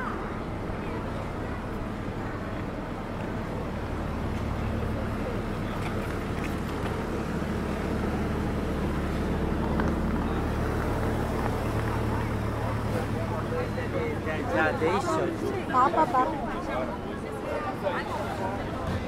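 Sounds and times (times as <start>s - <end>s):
people talking: 0.0s - 6.2s, 9.1s - 19.0s
low engine drone: 0.0s - 19.0s.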